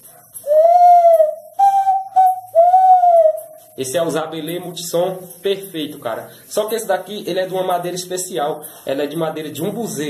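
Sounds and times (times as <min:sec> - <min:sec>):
wooden bird call whistle: 0:00.4 - 0:03.6.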